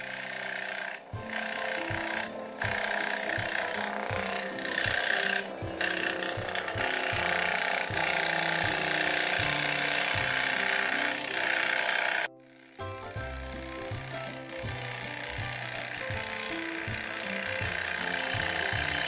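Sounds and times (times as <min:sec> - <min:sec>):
background music: 0:00.0 - 0:19.0
scroll saw cutting wood: 0:00.0 - 0:19.0.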